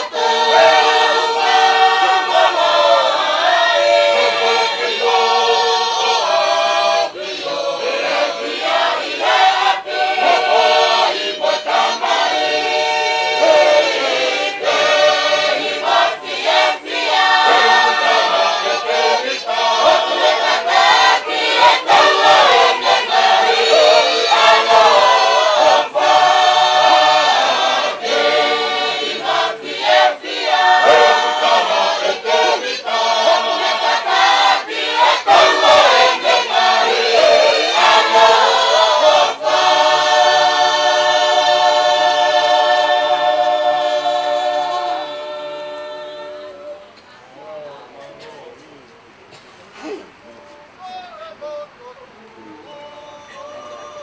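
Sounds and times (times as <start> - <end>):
choir singing in harmony: 0.0 - 48.0.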